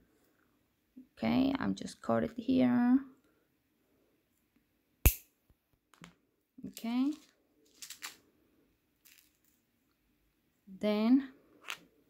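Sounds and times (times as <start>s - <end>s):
metal jewelry chain rustling: 7.0s - 8.2s.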